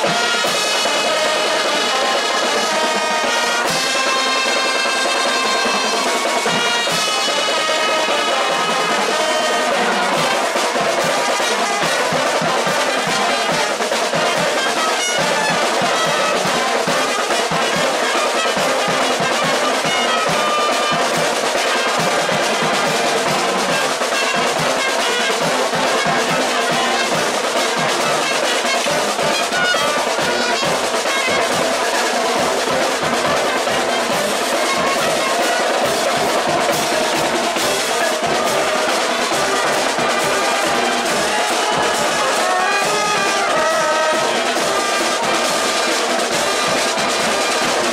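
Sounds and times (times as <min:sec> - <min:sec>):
cymbals: 0:00.0 - 0:47.9
snare and bass drums: 0:00.0 - 0:47.9
trumpets and trombones: 0:00.0 - 0:47.9.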